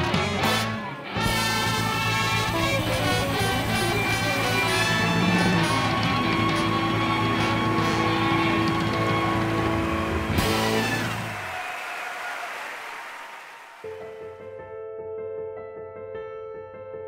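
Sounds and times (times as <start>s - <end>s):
blues band holding a chord: 0.0s - 14.5s.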